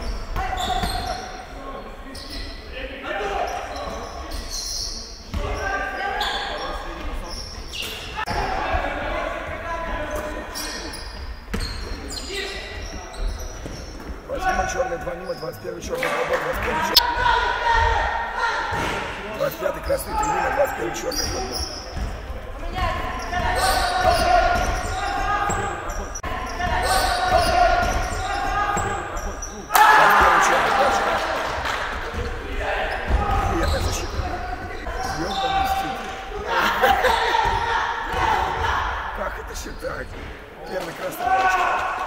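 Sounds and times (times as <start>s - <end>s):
people shouting: 29.7s - 31.4s, 36.3s - 39.1s.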